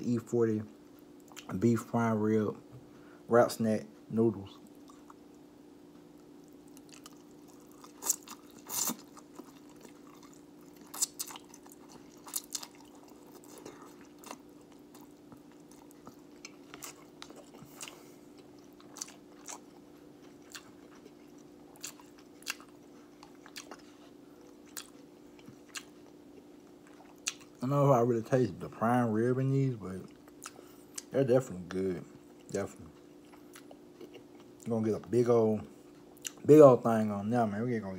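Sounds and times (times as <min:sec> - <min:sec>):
person chewing noodles: 0:04.6 - 0:05.4, 0:06.1 - 0:27.6, 0:30.1 - 0:31.1, 0:32.2 - 0:34.7, 0:35.8 - 0:36.4.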